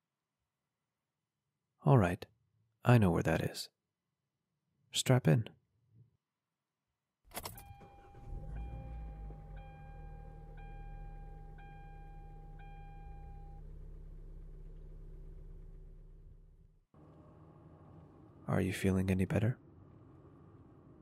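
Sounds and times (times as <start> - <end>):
car engine starting and idling: 7.3 - 18.4
dashboard warning chime: 7.4 - 13.8.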